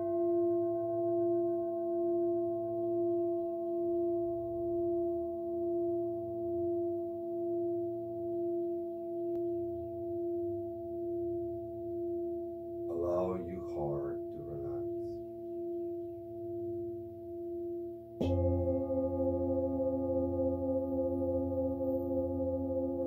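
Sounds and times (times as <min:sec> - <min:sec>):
singing bowl ringing: 0:15.3 - 0:23.0.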